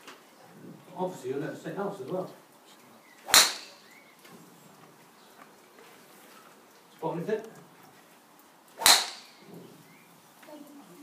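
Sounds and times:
golf driver striking ball: 3.3s - 3.9s, 8.8s - 9.4s.

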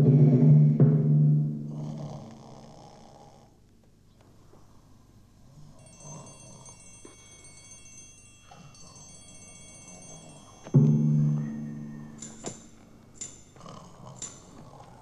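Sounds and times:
timpani music: 0.0s - 1.9s, 10.7s - 12.7s
high chime-like tones: 5.7s - 14.8s.

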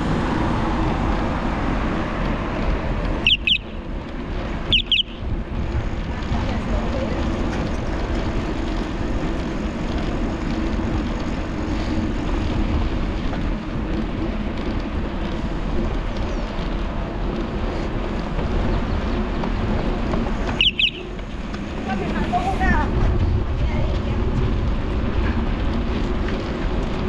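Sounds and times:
wind and road noise: 0.0s - 27.0s.

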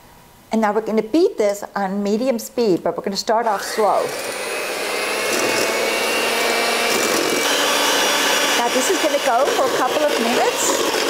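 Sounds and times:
electric hand mixer whining: 3.4s - 11.0s.

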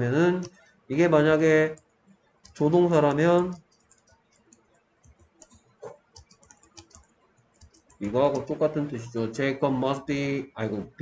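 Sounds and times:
faint keyboard typing: 0.0s - 10.1s.

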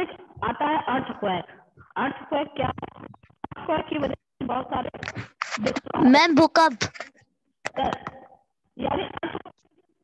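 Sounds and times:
person talking over video call: 0.0s - 9.4s
scratchy microphone noise: 1.8s - 7.2s.

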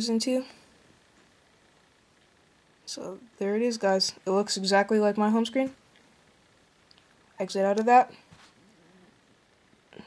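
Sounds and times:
person speaking: 2.9s - 5.8s, 7.4s - 8.3s.

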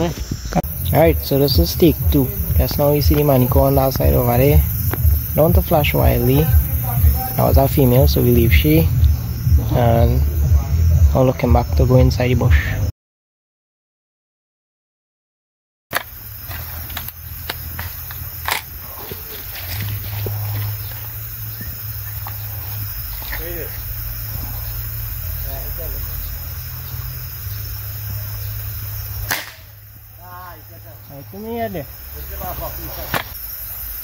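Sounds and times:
night insects hissing: 0.0s - 12.9s, 15.9s - 34.0s
loud sharp crack: 29.2s - 29.8s.

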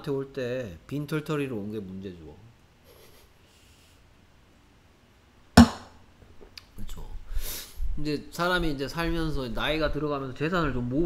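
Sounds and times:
sharp knock: 5.6s - 6.0s.

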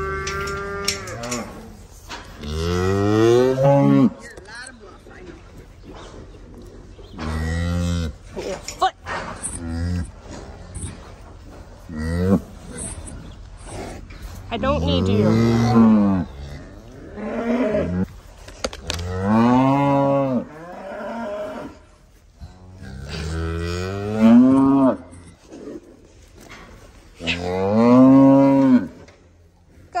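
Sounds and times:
cattle mooing: 0.0s - 1.8s, 2.4s - 4.2s, 14.7s - 18.1s.

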